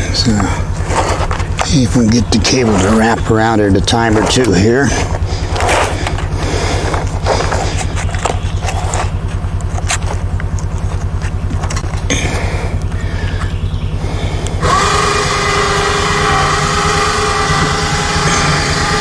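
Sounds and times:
high-pitched whine: 0.0 - 19.0
utility vehicle engine idling: 0.0 - 19.0.

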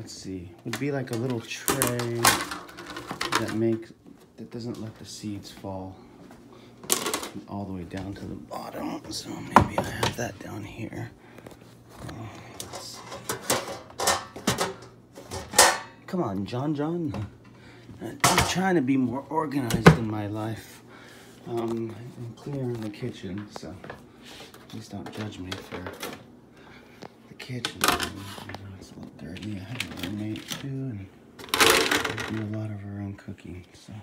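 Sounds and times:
metal cookware clattering: 12.7 - 16.0.

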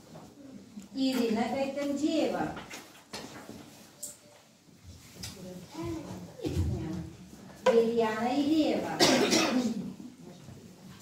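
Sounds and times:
loud cough: 9.0 - 9.8.

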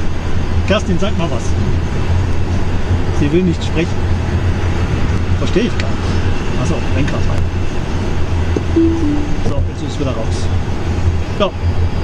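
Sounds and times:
two-note chime: 8.8 - 9.5.

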